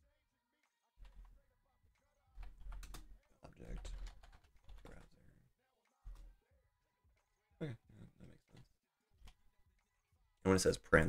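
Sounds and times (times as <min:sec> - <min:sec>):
keyboard typing: 0:01.0 - 0:01.4, 0:02.3 - 0:05.2, 0:06.0 - 0:06.4.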